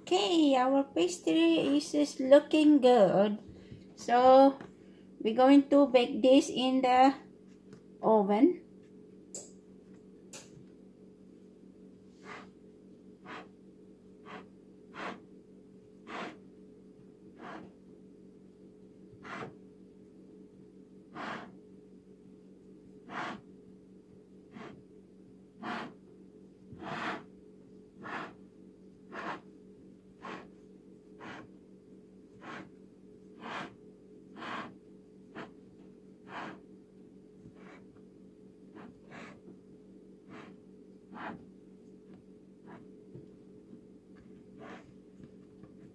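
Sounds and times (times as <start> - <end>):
low hum: 0.0 - 45.9
fingers rubbing pastry: 12.2 - 12.6, 13.2 - 13.5, 14.2 - 15.3, 16.0 - 16.4, 17.3 - 17.8, 19.2 - 19.6, 21.1 - 21.6, 23.0 - 23.5, 24.5 - 24.8, 25.6 - 26.0, 26.8 - 27.3, 28.0 - 28.4, 29.0 - 29.6, 30.2 - 31.6, 32.3 - 35.6, 36.2 - 36.7, 37.5 - 37.9, 38.7 - 39.5, 40.2 - 41.5, 42.6 - 42.9, 44.6 - 45.0.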